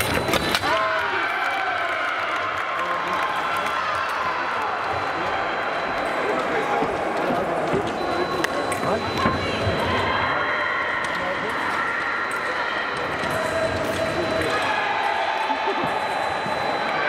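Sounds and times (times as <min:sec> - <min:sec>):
fencing foil clicks and footwork: 0:00.0 - 0:05.1, 0:11.0 - 0:16.0
hall background noise: 0:00.0 - 0:17.0.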